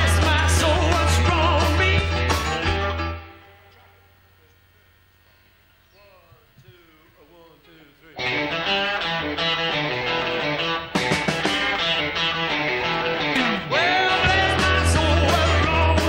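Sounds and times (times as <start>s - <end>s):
rock and roll band playing: 0.0s - 3.6s, 8.2s - 16.0s
bass: 0.0s - 3.8s, 8.2s - 16.0s.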